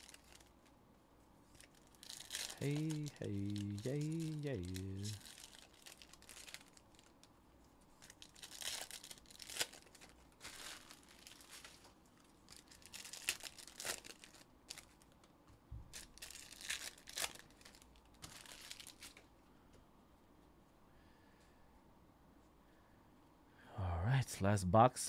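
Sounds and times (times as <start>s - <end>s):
foil wrappers tearing: 0.0s - 0.5s, 1.6s - 7.2s, 8.0s - 11.9s, 12.5s - 15.0s, 15.9s - 19.2s
foil wrappers crinkling: 0.0s - 0.7s, 1.4s - 7.3s, 7.9s - 15.2s, 15.9s - 19.3s.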